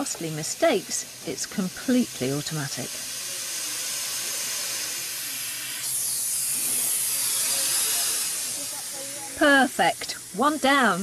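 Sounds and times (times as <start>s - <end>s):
power drill whirring: 0.0s - 11.0s.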